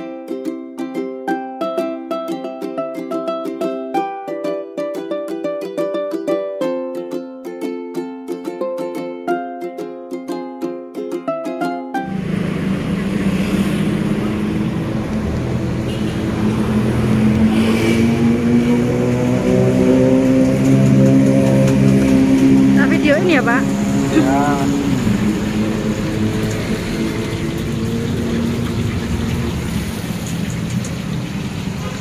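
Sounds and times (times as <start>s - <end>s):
plucked-string intro music: 0.0s - 31.8s
busy street noise: 12.0s - 32.0s
steady engine hum: 12.0s - 32.0s.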